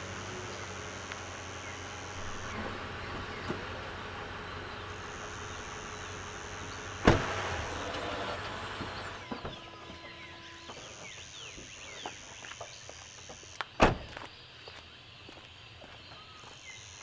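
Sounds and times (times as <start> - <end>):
pickup engine idling: 0.0 - 11.2
car door opening click: 7.0 - 10.0.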